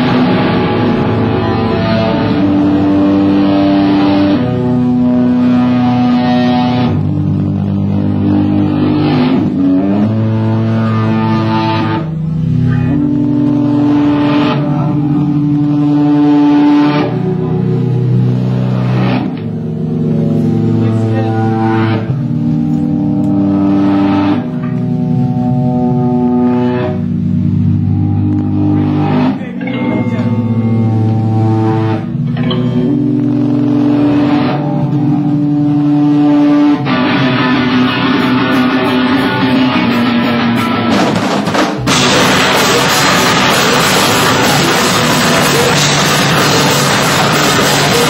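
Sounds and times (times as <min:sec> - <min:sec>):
live band droning chords: 0:00.0 - 0:48.0
live rock band playing loudly: 0:36.0 - 0:48.0.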